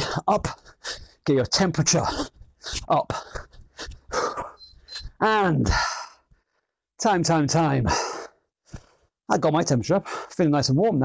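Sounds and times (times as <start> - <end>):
man breathing hard: 0.0 - 1.2, 2.0 - 6.7, 7.9 - 9.1.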